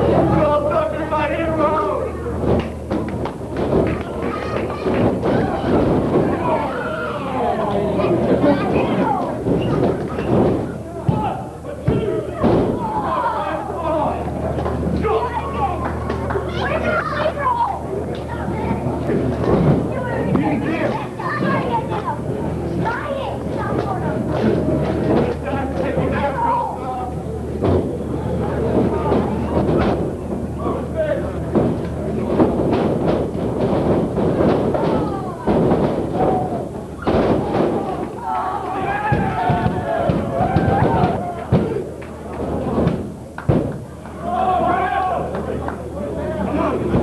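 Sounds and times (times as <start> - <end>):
crowd voices: 0.0 - 47.0
thuds on wrestling ring: 31.5 - 37.9, 39.1 - 41.8, 42.4 - 43.8
spectators shouting: 36.2 - 42.0, 44.2 - 45.6.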